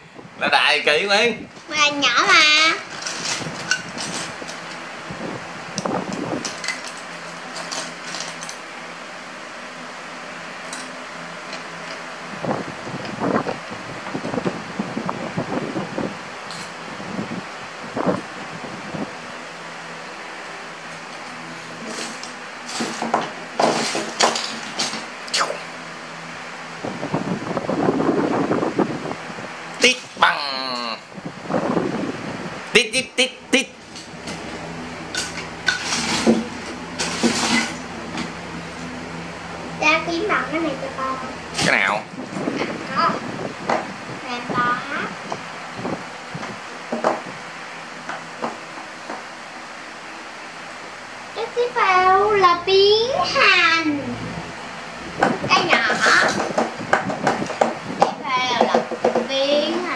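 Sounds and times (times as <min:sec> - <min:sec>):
steady background hum: 0:00.0 - 0:59.9.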